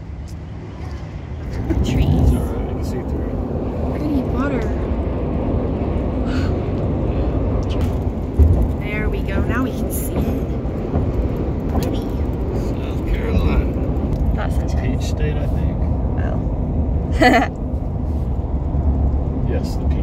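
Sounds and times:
car road and engine rumble: 0:00.0 - 0:20.0.

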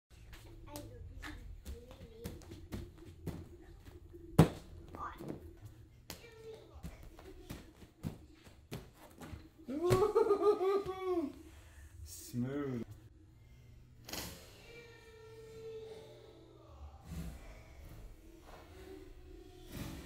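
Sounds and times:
bare feet thudding on gym mats: 0:01.6 - 0:05.4, 0:06.1 - 0:10.2
child laughing: 0:09.7 - 0:11.4.

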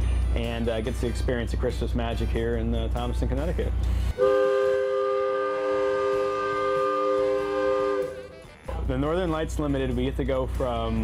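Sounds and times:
locomotive air horn chord: 0:04.1 - 0:08.8.

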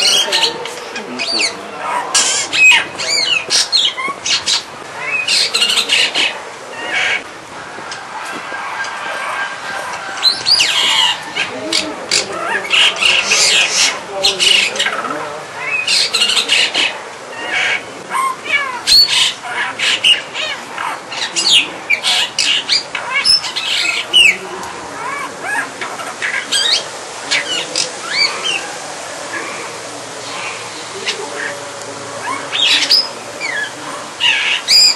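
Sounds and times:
starling singing: 0:00.0 - 0:07.3, 0:08.0 - 0:34.9.

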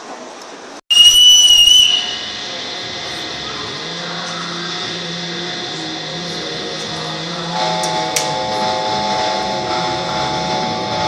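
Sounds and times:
railway station rushing noise: 0:00.0 - 0:11.0
shrill whistling tone: 0:00.9 - 0:07.8.

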